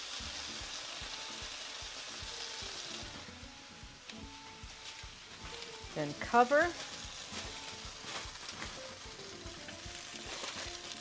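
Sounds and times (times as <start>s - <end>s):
eggplant sizzling in a skillet: 0.0s - 11.0s
aluminium foil crinkling: 4.1s - 11.0s.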